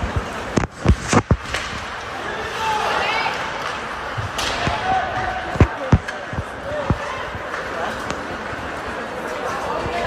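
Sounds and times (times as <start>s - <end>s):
puck and sticks hitting boards: 0.0s - 2.0s, 3.3s - 8.2s.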